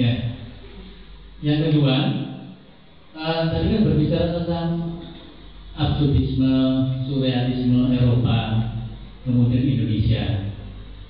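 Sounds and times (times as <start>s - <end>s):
man speaking slowly: 0.0s - 10.7s.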